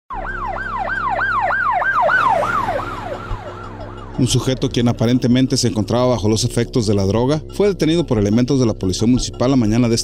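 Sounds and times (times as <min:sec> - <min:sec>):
police siren yelping: 0:00.1 - 0:04.6.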